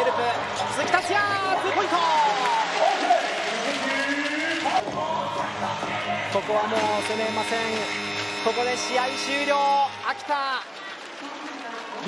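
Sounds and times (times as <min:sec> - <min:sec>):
crowd applauding and cheering: 0:00.0 - 0:12.0.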